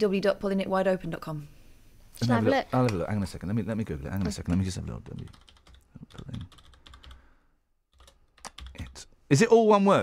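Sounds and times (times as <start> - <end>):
typing on computer keyboard: 4.5 - 7.2, 7.9 - 9.0.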